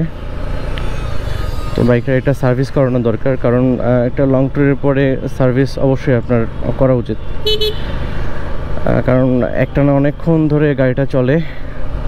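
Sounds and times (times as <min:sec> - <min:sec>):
motorcycle engine: 0:00.0 - 0:09.4.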